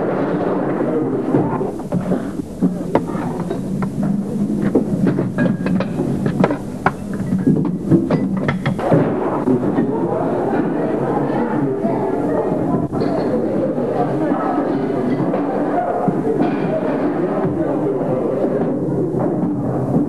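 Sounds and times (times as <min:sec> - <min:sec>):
din of diners: 0:00.0 - 0:20.0.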